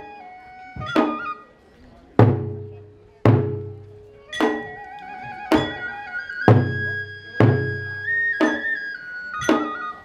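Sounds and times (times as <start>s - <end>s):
high flute melody: 0.0s - 1.7s, 4.0s - 10.0s
taiko drum hits: 2.2s - 5.9s, 6.5s - 8.7s.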